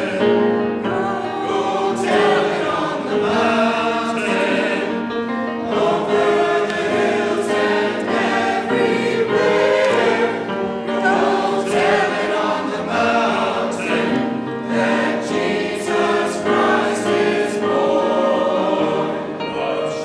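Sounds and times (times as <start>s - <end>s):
church choir singing: 0.0s - 20.0s.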